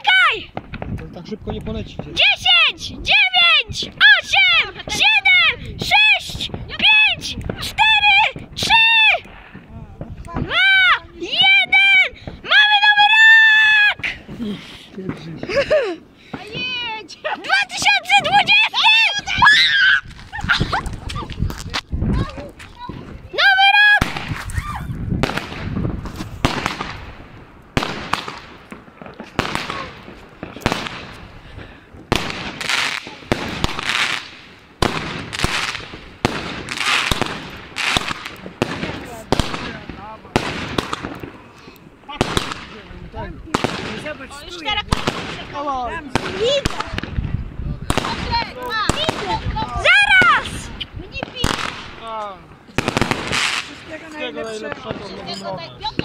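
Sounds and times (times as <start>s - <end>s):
fireworks bangs and crackles: 0.0s - 56.0s
whistling fireworks: 22.9s - 41.6s.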